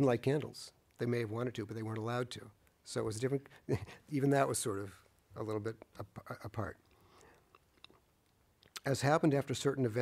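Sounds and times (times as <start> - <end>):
man speaking: 0.0 - 6.9, 8.7 - 10.0.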